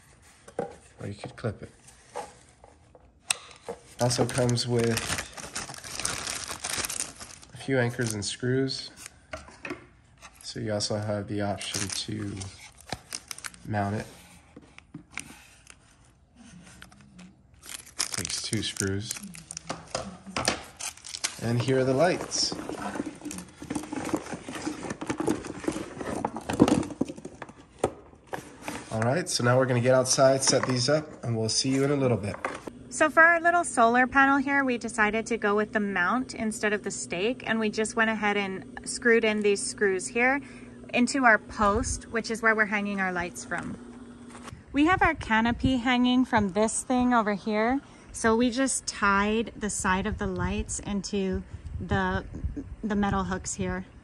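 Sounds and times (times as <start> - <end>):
handling plastic parts: 1.9 - 8.2, 11.4 - 16.1, 17.6 - 29.2.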